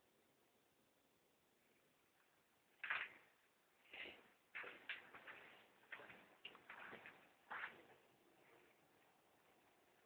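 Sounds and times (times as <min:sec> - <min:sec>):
faint clicks and taps: 0:04.5 - 0:08.0.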